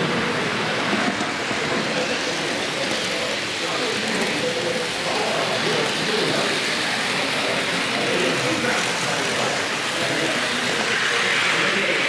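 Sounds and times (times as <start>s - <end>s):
faint voices: 0.0s - 12.0s
model train wheels clattering: 0.9s - 12.0s.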